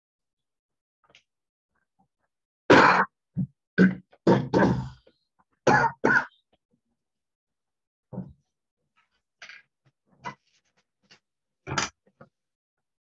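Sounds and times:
person coughing: 2.7s - 3.1s, 3.8s - 5.0s, 5.7s - 6.4s
person clearing throat: 2.7s - 3.2s, 3.8s - 5.1s, 5.7s - 6.4s.

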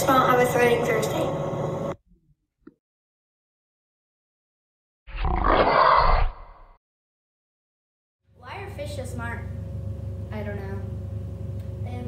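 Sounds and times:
lion roar: 5.1s - 6.7s.

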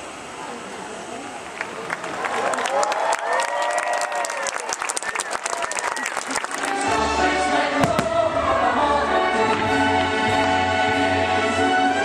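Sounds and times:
crowd noise: 0.0s - 12.0s
orchestral show music: 6.4s - 12.0s
firework bang: 7.8s - 8.9s.

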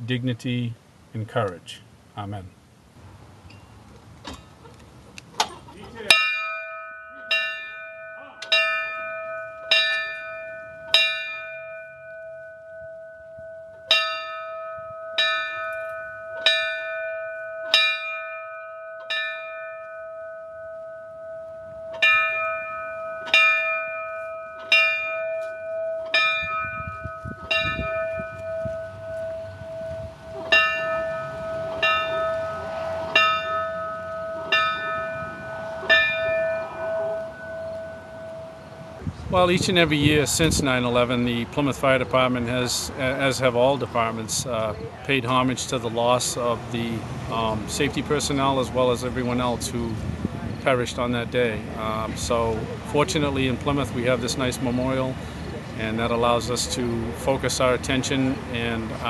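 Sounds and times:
brass bell tolling: 6.1s - 39.2s.

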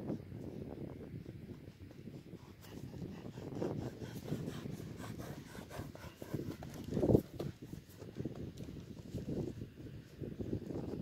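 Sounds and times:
hooves thudding in soft sand: 0.2s - 11.0s.

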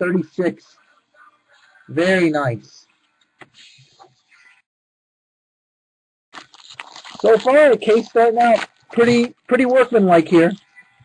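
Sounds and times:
trading cards handling: 6.4s - 9.4s.

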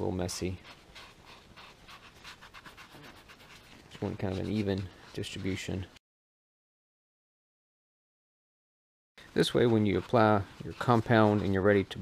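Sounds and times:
soft rubbing on foam pad: 0.4s - 5.9s, 9.2s - 12.0s.

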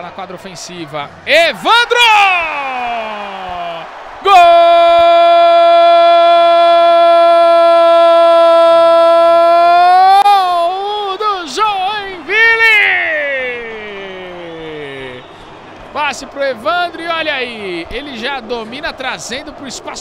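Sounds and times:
sports commentator shouting goal cry: 0.8s - 15.2s.

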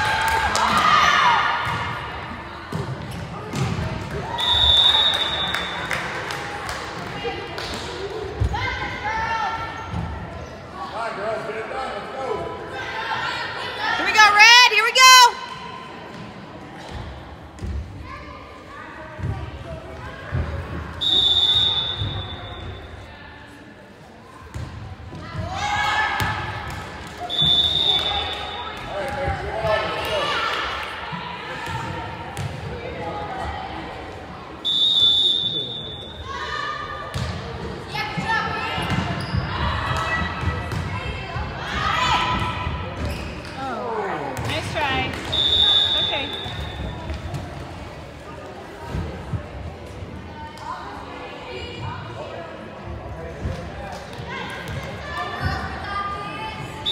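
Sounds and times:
referee whistle blasts: 4.3s - 5.9s, 21.0s - 22.8s, 27.2s - 28.7s, 34.6s - 36.2s, 45.3s - 46.9s.

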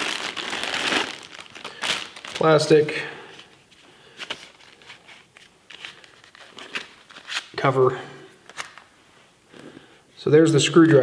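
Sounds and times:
plastic packaging rustling: 0.0s - 7.6s.

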